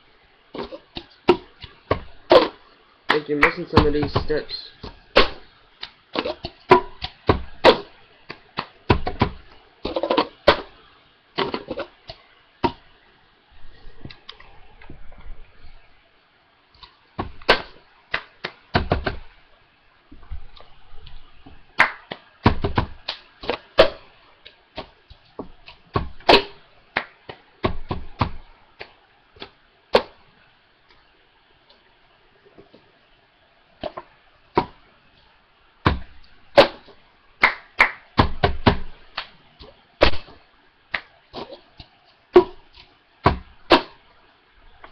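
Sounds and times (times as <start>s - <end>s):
hands clapping and tapping: 3.1s - 3.9s, 18.1s - 19.1s, 21.8s - 23.6s, 27.0s - 27.4s, 37.4s - 38.1s.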